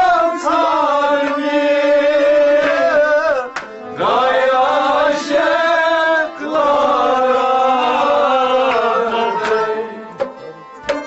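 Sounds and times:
man singing chant-like phrases: 0.0s - 10.1s.

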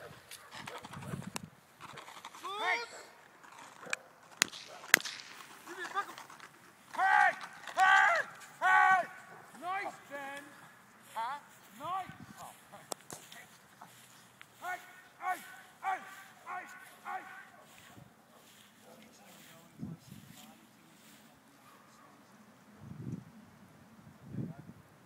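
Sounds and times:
person shouting calls: 2.4s - 3.1s, 6.9s - 12.6s, 14.6s - 17.7s
sharp cracks: 3.2s - 9.2s.

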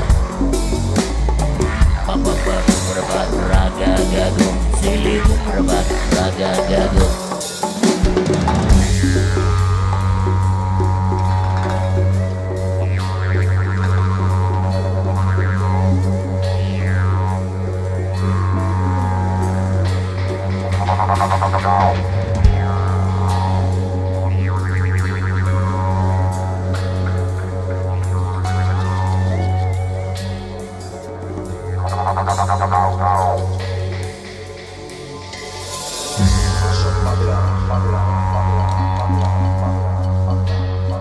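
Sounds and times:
steady drum beat: 0.0s - 12.6s, 19.5s - 23.8s, 33.8s - 39.8s
didgeridoo drone: 0.0s - 41.0s.

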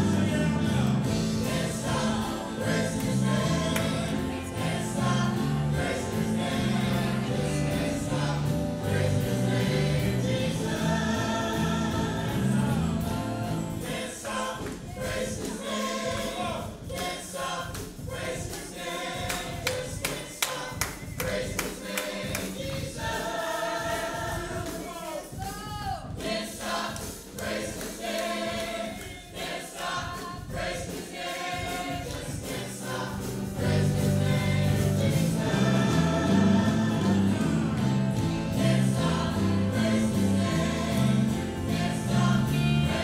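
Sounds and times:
low bass line: 0.0s - 2.2s, 33.6s - 43.0s
congregation singing along: 0.0s - 43.0s
worship band playing: 0.0s - 43.0s.

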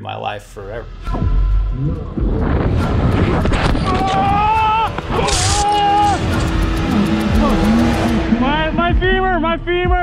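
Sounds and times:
background music with low note: 0.0s - 10.0s.

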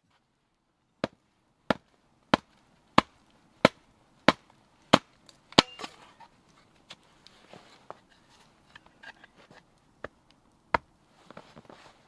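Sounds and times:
hatchet chopping wood: 1.0s - 6.0s.

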